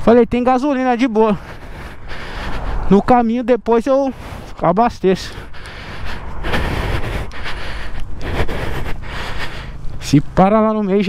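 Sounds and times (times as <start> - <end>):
wind rushing over microphone: 0.0 - 10.4
motorcycle engine rumble: 4.3 - 11.0.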